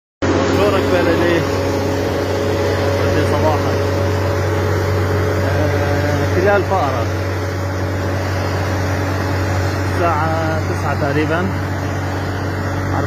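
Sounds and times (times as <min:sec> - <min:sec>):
car engine drone inside vehicle: 0:00.2 - 0:13.0
man speaking: 0:00.5 - 0:01.6, 0:05.4 - 0:07.2.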